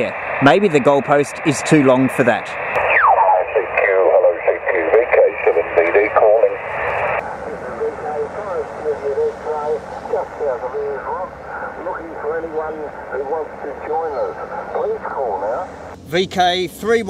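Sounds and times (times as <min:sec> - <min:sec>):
radio hiss: 0:00.0 - 0:16.0
radio speech from small speaker: 0:00.0 - 0:16.0.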